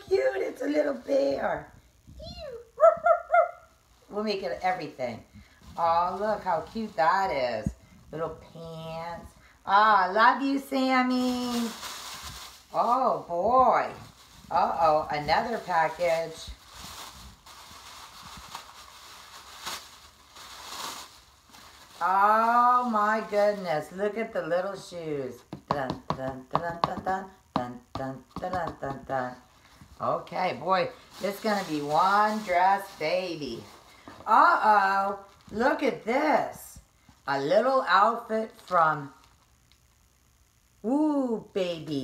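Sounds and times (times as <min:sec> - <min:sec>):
small dog whining: 0:02.2 - 0:03.7
small dog yipping: 0:02.8 - 0:03.7
tissue paper rustling: 0:04.0 - 0:08.8, 0:10.3 - 0:24.0, 0:29.5 - 0:35.8.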